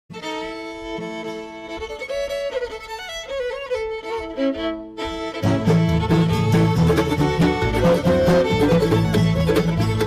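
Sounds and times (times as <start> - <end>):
fiddle playing quick melody: 0.1 - 10.0
string band accompaniment: 0.1 - 10.0.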